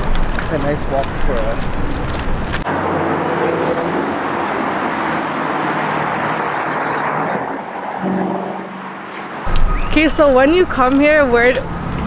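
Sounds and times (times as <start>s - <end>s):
highway traffic: 0.0s - 12.0s.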